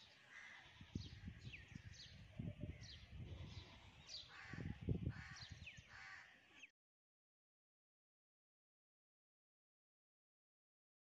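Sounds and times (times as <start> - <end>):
harsh bird caws: 0.3 - 0.8, 4.3 - 6.4
wind rumbling on microphone: 0.8 - 6.0.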